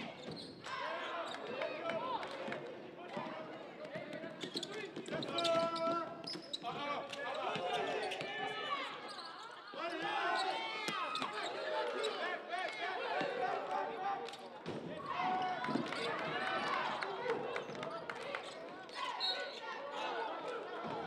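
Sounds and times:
sneakers squeaking: 0.0s - 1.5s, 4.0s - 12.2s
voices of players and crowd: 0.0s - 21.0s.

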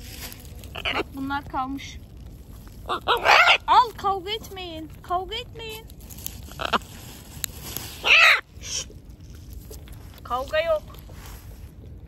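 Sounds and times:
macaws squawking: 0.7s - 1.2s, 2.8s - 3.9s, 6.5s - 6.9s, 8.0s - 8.9s.

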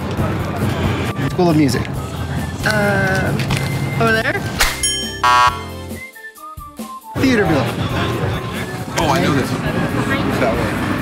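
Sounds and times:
short descending musical tones: 4.8s - 5.8s
buzzing wrong answer buzzer: 5.2s - 5.7s.

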